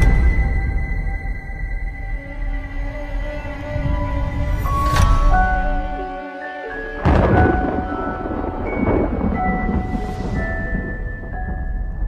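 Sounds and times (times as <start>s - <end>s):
cinematic score held notes: 0.0s - 12.0s.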